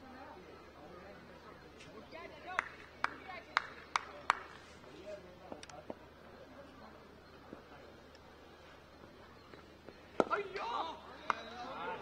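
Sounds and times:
faint voices: 0.0 - 12.0
light claps or taps: 2.6 - 4.6, 11.2 - 11.5
person clapping hands: 2.6 - 4.6.

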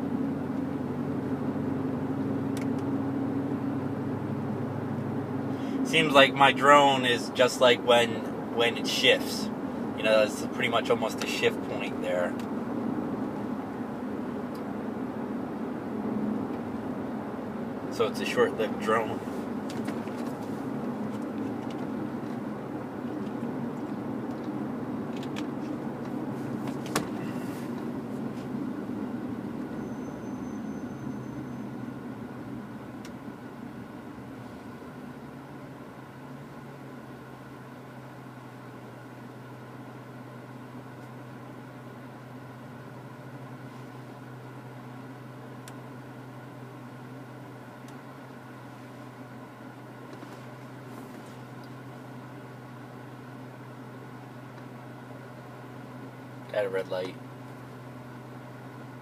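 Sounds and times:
car engine running: 0.0 - 59.0.

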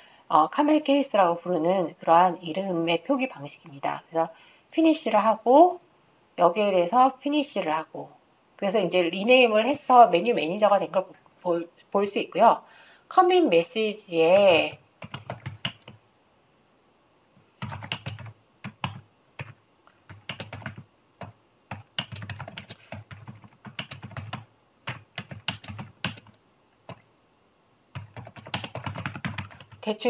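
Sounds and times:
typing on a computer keyboard: 15.0 - 16.0, 17.6 - 27.0, 27.9 - 29.9.

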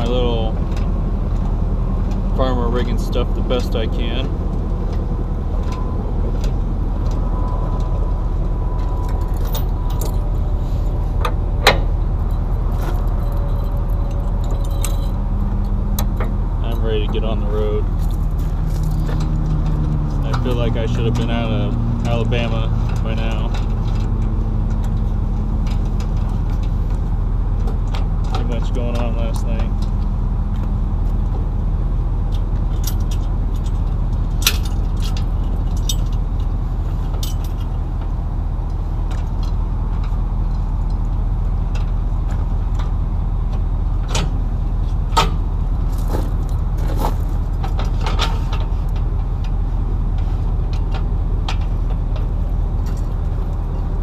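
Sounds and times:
diesel engine idling: 0.0 - 54.0
metallic clinks of trailer hitch: 9.0 - 25.0, 32.3 - 37.8.

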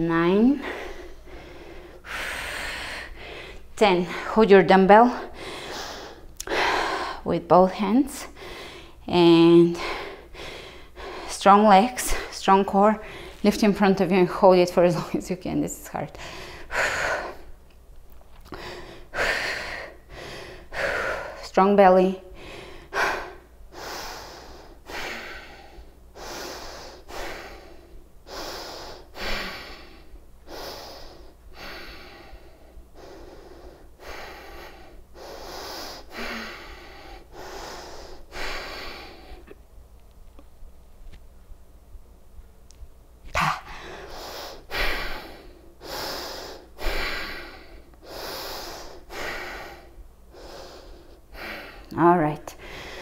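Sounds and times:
woman breathing hard: 0.4 - 4.4, 5.1 - 7.3, 8.2 - 9.0, 9.7 - 11.4, 13.0 - 13.4, 16.2 - 17.6, 18.4 - 21.5, 22.3 - 39.6, 43.3 - 51.9, 52.5 - 53.0.

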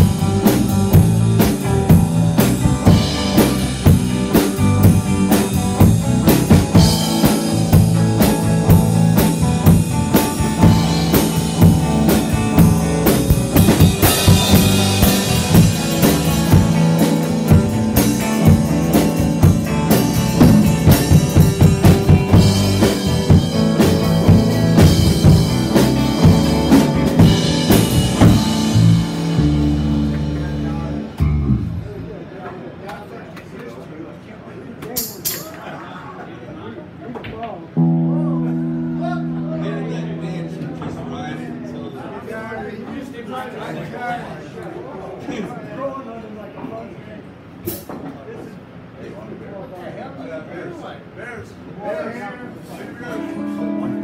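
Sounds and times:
drum kit hits: 0.0 - 32.1, 40.0 - 41.8
electric guitar: 0.0 - 32.1, 37.8 - 42.0, 53.2 - 54.0
bass guitar: 0.0 - 32.2, 37.8 - 42.2.

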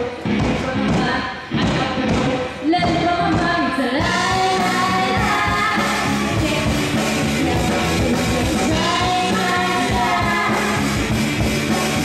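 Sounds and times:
woman singing: 0.0 - 11.0
drum kit: 0.0 - 12.0
guitar: 0.0 - 12.0.

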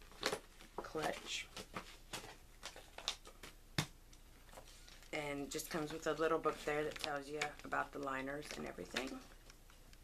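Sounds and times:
cardboard packaging crackling: 0.0 - 3.6, 4.5 - 9.5.

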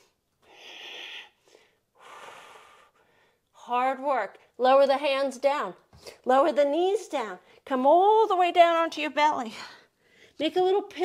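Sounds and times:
woman breathing with effort: 0.4 - 3.5.

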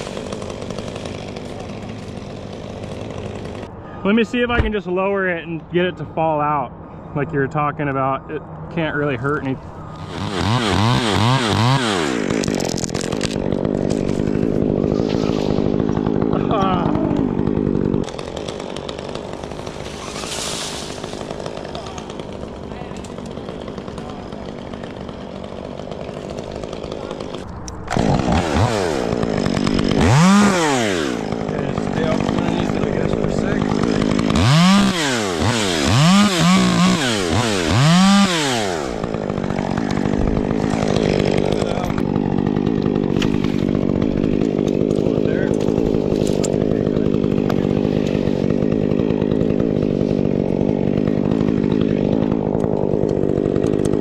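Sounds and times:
chainsaw idling and revving: 0.0 - 3.8, 8.8 - 54.0.

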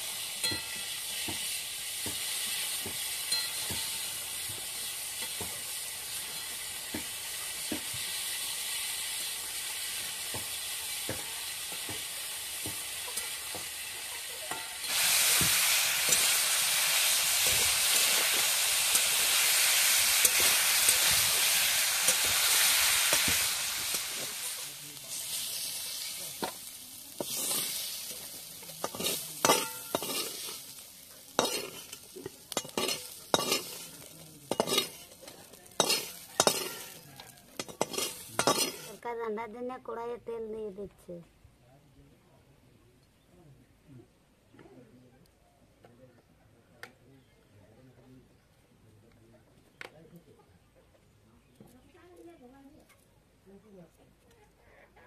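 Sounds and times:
vegetables sizzling in oil: 0.0 - 39.0
metal spatula scraping a pan: 14.5 - 16.5, 27.2 - 39.0.

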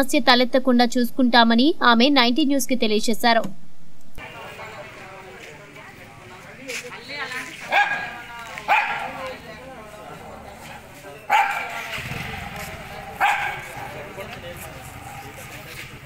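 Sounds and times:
people talking: 0.0 - 3.5, 4.2 - 16.0
dog barking: 7.7 - 9.4, 11.3 - 12.0, 13.1 - 14.2, 15.0 - 15.7.

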